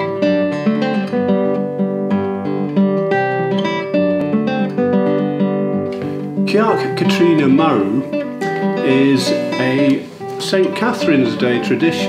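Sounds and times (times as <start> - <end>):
classical guitar fingerpicking: 0.0 - 12.0.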